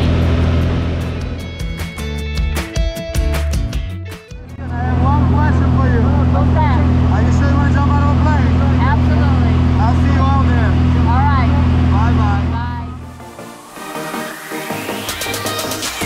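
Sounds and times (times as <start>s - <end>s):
propeller plane engine drone: 0.0s - 2.8s, 4.4s - 15.3s
voices talking: 4.6s - 13.2s.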